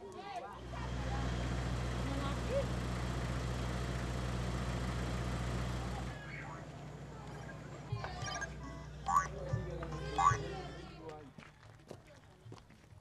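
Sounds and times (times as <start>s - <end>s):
vehicle engine idling: 0.6s - 11.2s.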